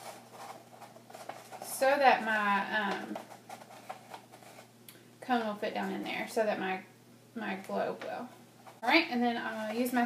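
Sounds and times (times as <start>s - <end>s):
paper rustling: 0.0s - 4.7s, 9.5s - 10.0s.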